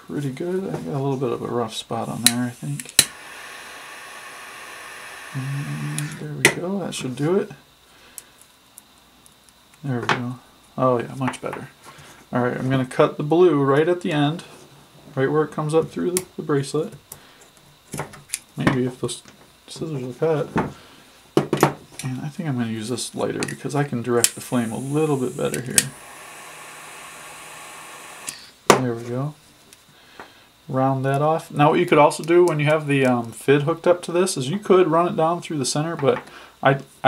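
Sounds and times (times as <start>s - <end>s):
man speaking: 0.0s - 2.9s, 5.4s - 7.6s, 22.0s - 26.0s
lighter flame hissing: 2.0s - 6.4s, 24.2s - 28.6s.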